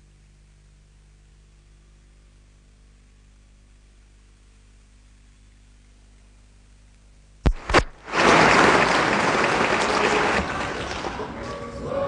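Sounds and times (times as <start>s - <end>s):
audience applauding: 7.5s - 12.0s.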